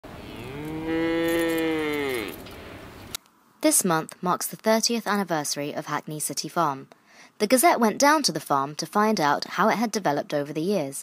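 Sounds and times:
cow mooing: 0:00.1 - 0:02.5.

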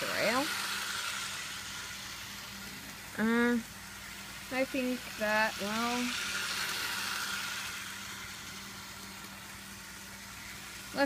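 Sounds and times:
toy train motor whirring: 0:00.0 - 0:11.0.

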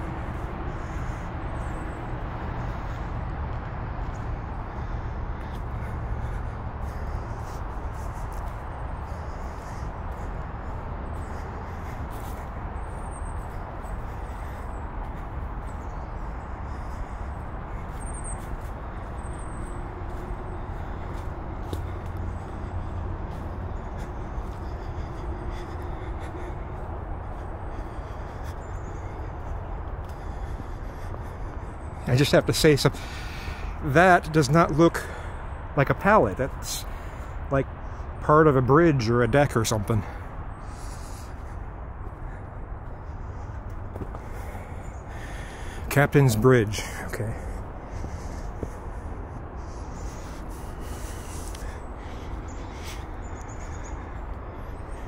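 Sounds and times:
footsteps on dirt trail: 0:00.0 - 0:37.5, 0:39.3 - 0:55.0
steady low rumble: 0:00.0 - 0:55.0.

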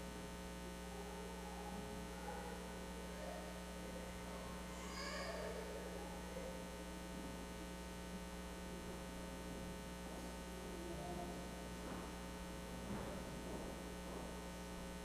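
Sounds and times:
electrical mains hum: 0:00.0 - 0:15.0
faint indistinct voices: 0:00.5 - 0:14.5
faint high-pitched voice: 0:00.8 - 0:06.7, 0:10.1 - 0:12.1.

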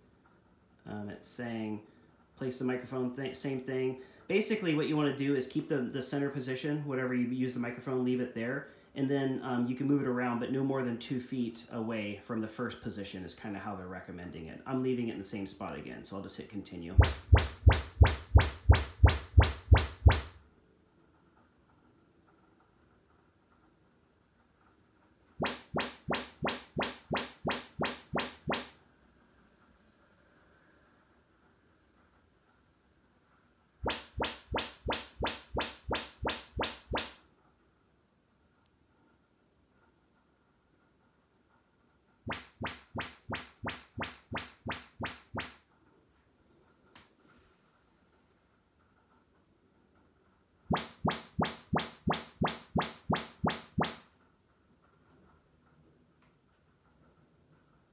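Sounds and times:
speaker test chirps: 0:17.0 - 0:20.3, 0:25.4 - 0:28.7, 0:33.8 - 0:37.1, 0:50.7 - 0:54.0.

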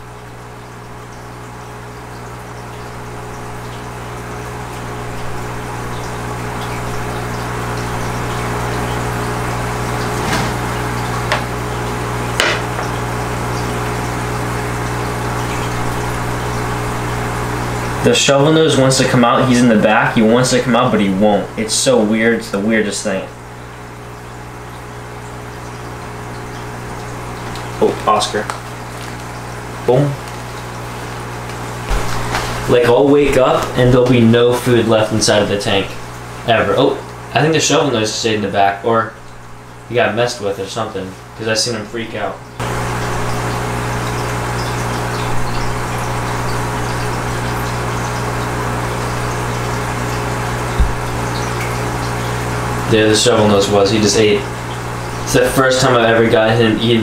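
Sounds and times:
air pump humming: 0:00.0 - 0:57.0
air bubbling through water: 0:26.2 - 0:34.7, 0:42.7 - 0:52.9
low knock: 0:50.8 - 0:51.2.

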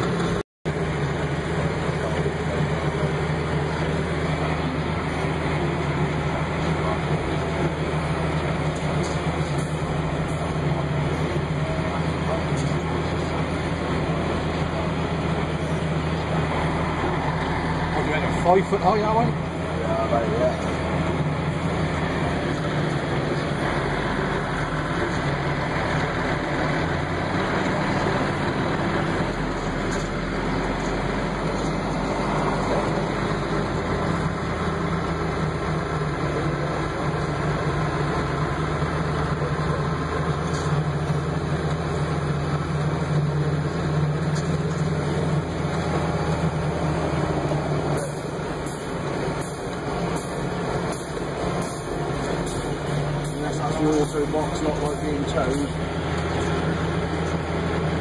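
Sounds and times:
tractor engine running: 0:00.0 - 0:58.0.

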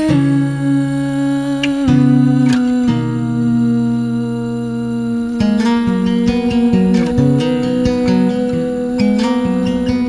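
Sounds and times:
acoustic guitar: 0:00.0 - 0:10.0
wordless hummed vocal: 0:00.0 - 0:10.0.

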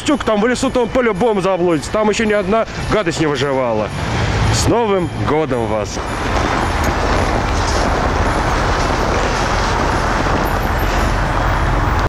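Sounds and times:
road traffic rush: 0:00.0 - 0:12.0.

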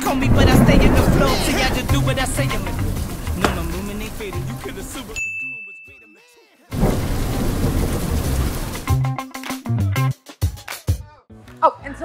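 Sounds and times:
hip-hop music bed: 0:00.0 - 0:06.8, 0:08.8 - 0:11.4
thin high beep: 0:05.2 - 0:06.7.

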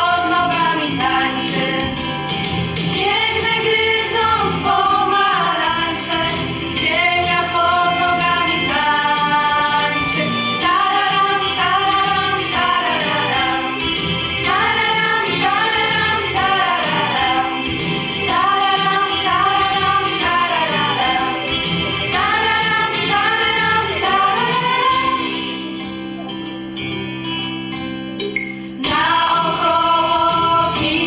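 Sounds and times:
female choir singing: 0:00.0 - 0:01.9, 0:03.0 - 0:13.8, 0:14.4 - 0:21.4, 0:22.1 - 0:25.4, 0:28.8 - 0:31.0.

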